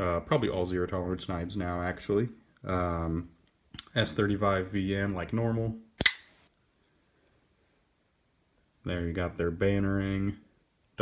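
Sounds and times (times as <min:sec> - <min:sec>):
knife blade snapping into lock: 0:06.0 - 0:06.3.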